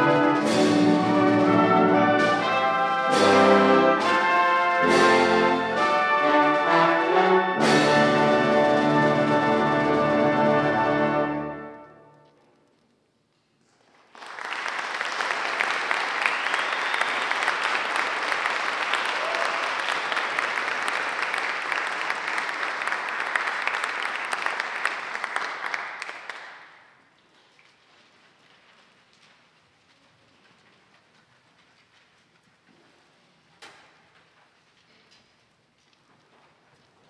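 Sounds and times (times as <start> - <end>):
audience applauding: 13.8 - 26.9.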